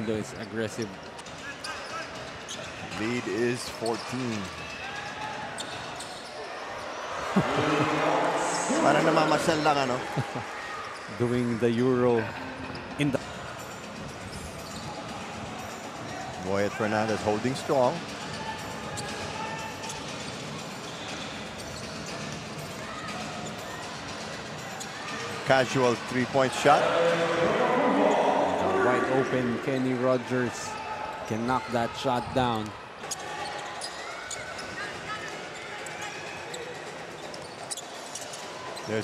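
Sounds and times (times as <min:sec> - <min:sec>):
murmur of arena crowd: 0:00.0 - 0:39.0.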